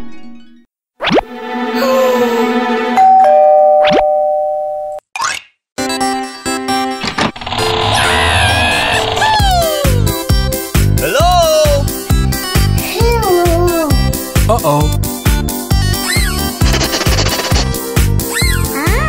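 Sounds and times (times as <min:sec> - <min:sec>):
background music: 0:01.1 - 0:03.2, 0:05.8 - 0:19.0
doorbell ding-dong chime: 0:03.0 - 0:05.0.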